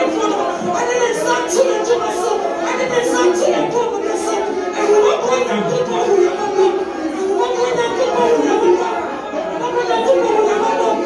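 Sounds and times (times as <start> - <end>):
women praying aloud: 0.0 - 11.0.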